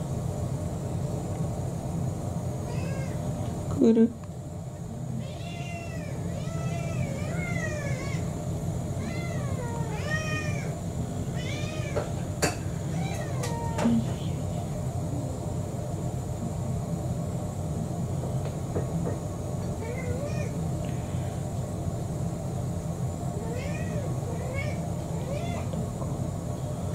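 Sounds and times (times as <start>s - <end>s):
steady low hum: 0.0s - 26.9s
cats meowing: 2.7s - 3.3s, 5.2s - 8.3s, 9.0s - 14.5s, 23.4s - 25.8s.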